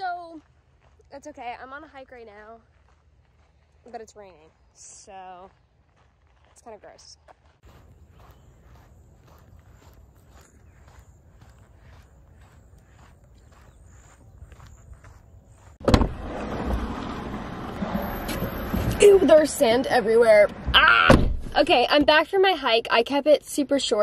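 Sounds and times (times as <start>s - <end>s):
footsteps on sand: 0.0s - 15.8s
loud thump: 15.8s - 17.1s, 20.6s - 21.7s.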